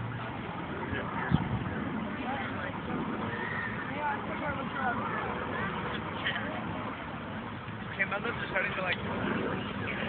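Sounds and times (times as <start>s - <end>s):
steady background rush: 0.0s - 10.0s.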